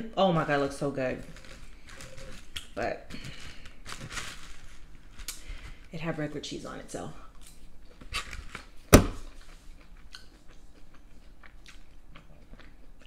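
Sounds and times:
person chewing soft food: 0:01.2 - 0:04.1, 0:07.4 - 0:13.0.

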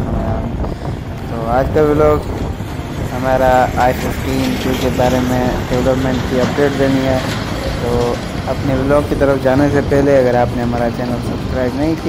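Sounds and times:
vehicle driving rumble: 0:00.0 - 0:12.0
person speaking: 0:03.0 - 0:12.0.

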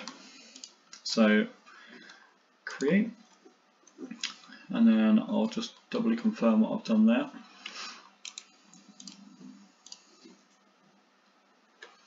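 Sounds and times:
computer mouse clicks: 0:00.0 - 0:01.0, 0:07.6 - 0:10.5
quiet room hiss: 0:00.0 - 0:12.0.

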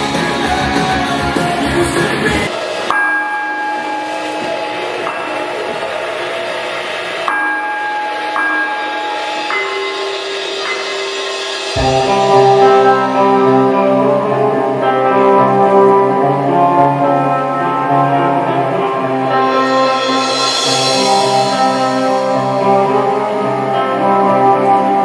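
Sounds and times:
rock band music: 0:00.0 - 0:07.2, 0:08.5 - 0:25.0
sparse held notes: 0:02.4 - 0:25.0.

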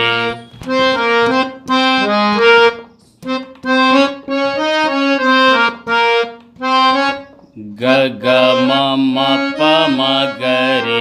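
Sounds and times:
harmonium playing detached notes: 0:00.0 - 0:11.0.

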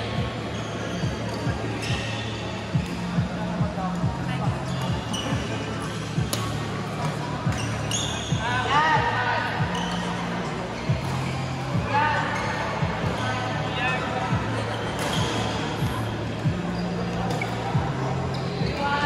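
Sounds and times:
rubber soles squeaking: 0:07.4 - 0:09.0.

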